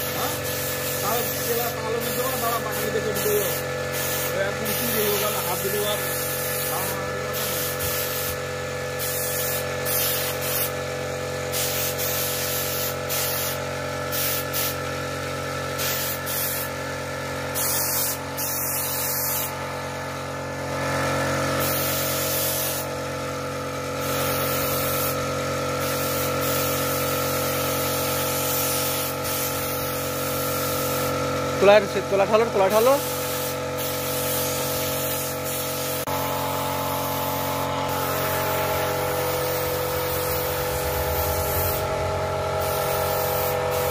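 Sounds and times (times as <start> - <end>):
air spray gun hissing: 0.0 - 43.9
steady hum: 36.5 - 43.9.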